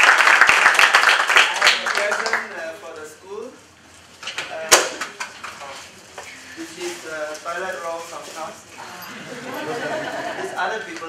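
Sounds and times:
plastic wrapping crinkling: 5.4s - 8.9s.

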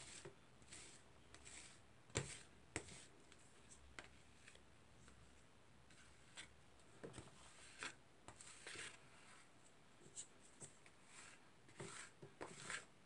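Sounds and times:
spatulas scraping and tapping a plate: 11.7s - 12.9s.

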